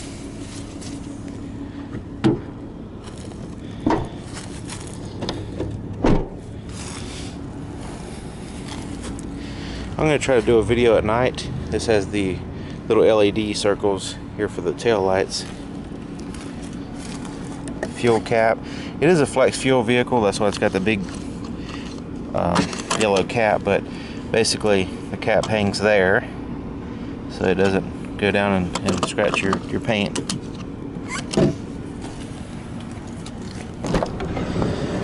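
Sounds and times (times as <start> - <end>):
steady low hum: 0.0 - 35.0
fuel filler door clicks: 5.2 - 6.4.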